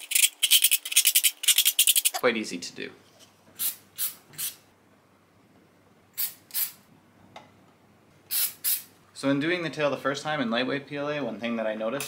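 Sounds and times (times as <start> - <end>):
aerosol can spraying bursts: 6.2 - 6.8, 8.3 - 8.9.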